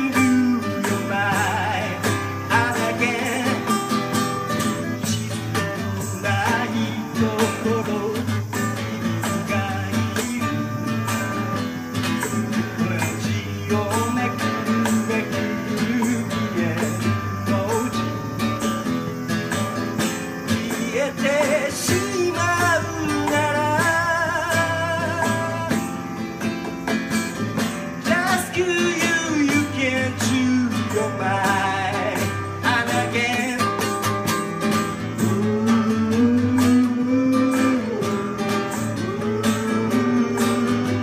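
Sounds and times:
man singing: 0:00.0 - 0:18.9, 0:20.0 - 0:26.3, 0:28.0 - 0:41.0
acoustic guitar strummed: 0:00.0 - 0:41.0.

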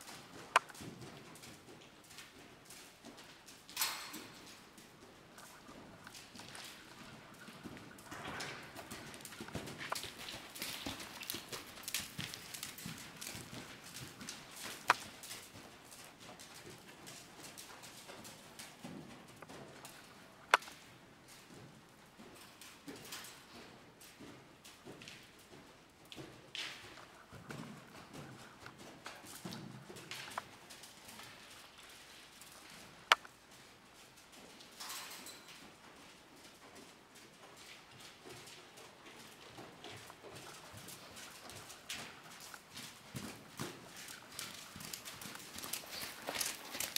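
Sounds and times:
horse hooves trotting on sand: 0:00.0 - 0:46.9.

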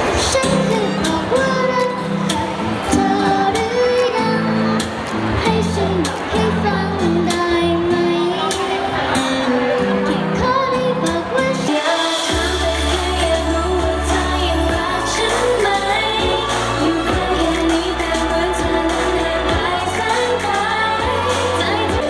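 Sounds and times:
person singing pop song: 0:00.0 - 0:22.0
heavy bass line: 0:12.3 - 0:22.0.

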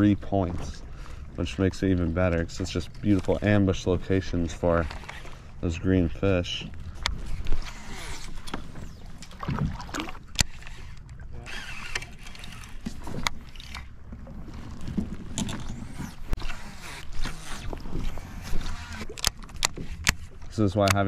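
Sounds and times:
water sloshing against kayak hull: 0:00.0 - 0:21.0.

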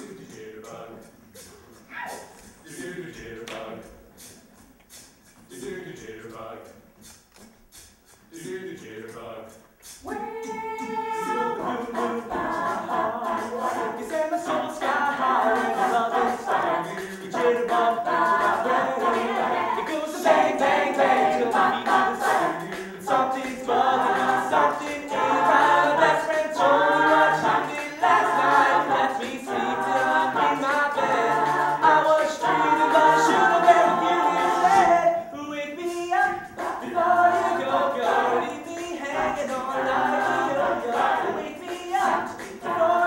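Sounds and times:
a cappella group singing pop: 0:00.0 - 0:43.0.

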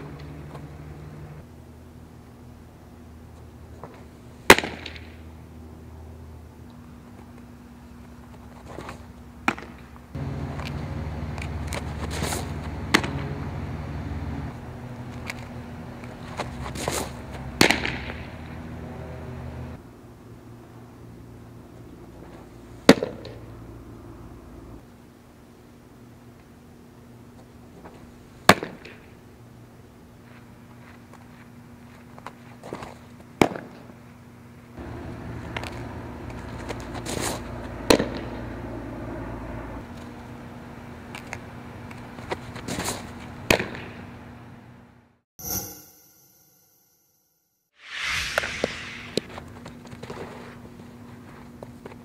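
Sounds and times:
brushing noise of pitching motion: 0:47.8 - 0:49.4.

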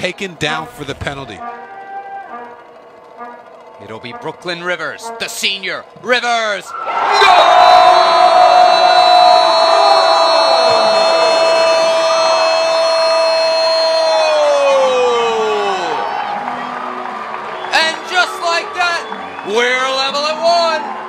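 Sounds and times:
crowd cheering: 0:00.0 - 0:21.0
goal horn sounding: 0:01.1 - 0:05.4, 0:08.7 - 0:13.8.

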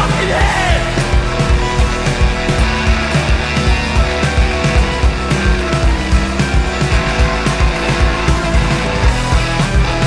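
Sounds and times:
fast driving drum beat: 0:00.0 - 0:10.0
rock band playing: 0:00.0 - 0:10.0.

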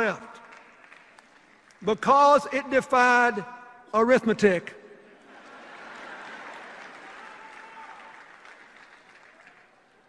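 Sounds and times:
crowd applauding: 0:00.0 - 0:01.9, 0:05.2 - 0:10.0.

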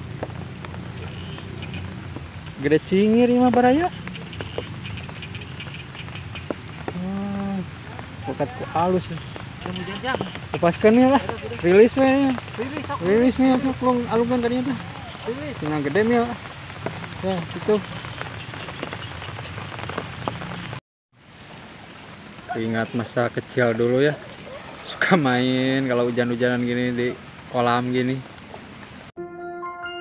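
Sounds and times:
rain falling: 0:00.0 - 0:29.1.

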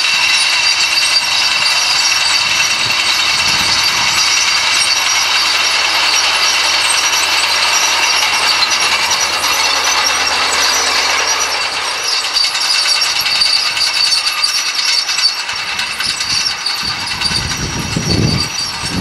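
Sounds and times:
metallic clanking of tracks and discs: 0:00.0 - 0:19.0
tractor engine: 0:00.0 - 0:19.0.

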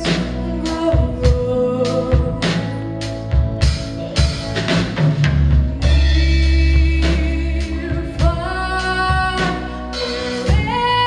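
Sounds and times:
woman singing: 0:00.0 - 0:03.4, 0:05.8 - 0:11.0
bass: 0:00.0 - 0:11.0
drum kit beat: 0:00.0 - 0:11.0
keyboards: 0:00.0 - 0:11.0.

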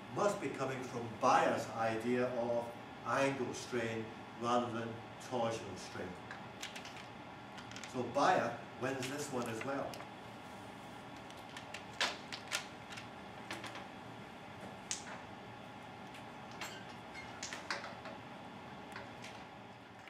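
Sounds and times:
room hum: 0:00.0 - 0:20.0.

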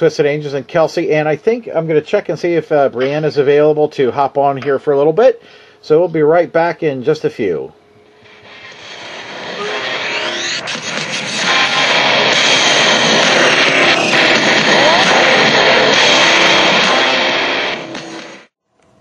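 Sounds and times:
music: 0:09.0 - 0:18.9.

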